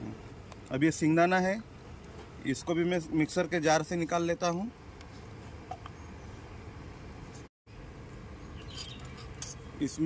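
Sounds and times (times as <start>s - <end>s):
spoon scraping metal kitchenware: 8.7s - 9.6s.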